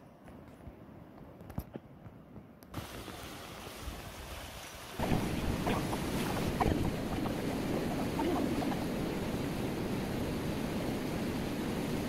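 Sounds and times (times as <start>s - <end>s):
river rushing over stones: 2.8s - 12.0s
wind on microphone: 5.0s - 12.0s.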